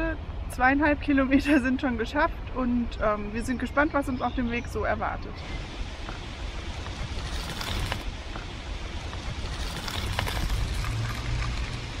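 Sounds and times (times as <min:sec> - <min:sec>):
bicycle tyres crunching on gravel: 0:06.8 - 0:08.1, 0:09.1 - 0:12.0.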